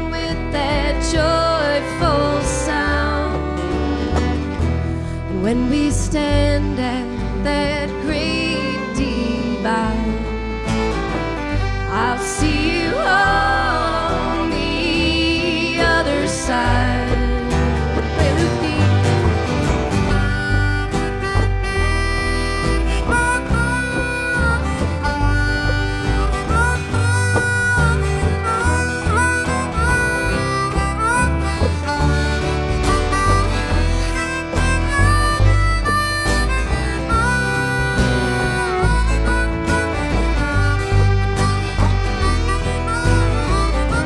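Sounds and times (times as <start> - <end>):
country band instrumental: 0.0 - 44.0
lead instrument bending notes: 0.0 - 44.0.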